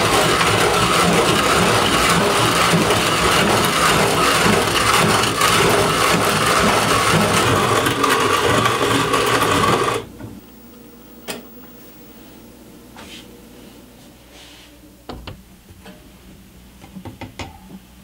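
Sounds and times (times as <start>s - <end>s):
coffee mill grinding beans: 0.0s - 10.1s.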